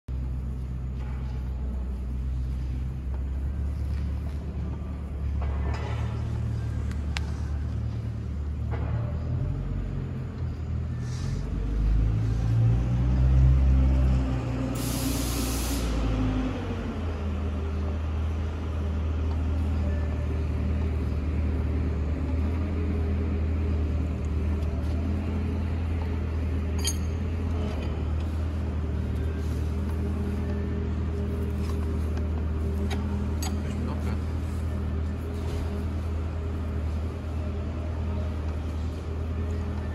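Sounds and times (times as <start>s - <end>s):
forklift engine idling: 0.1s - 39.9s
short hiss: 14.8s - 16.0s.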